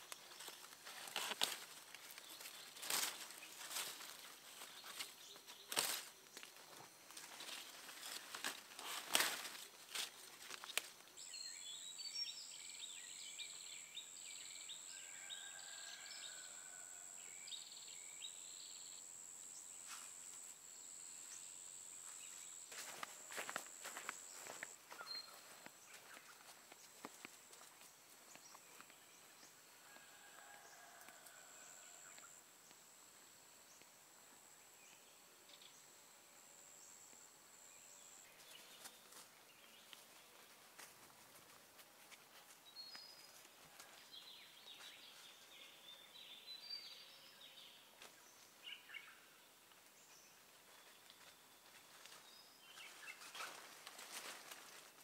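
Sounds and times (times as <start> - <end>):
footsteps through vegetation: 0.0 - 11.3, 19.7 - 32.3, 38.2 - 45.6, 49.7 - 55.0.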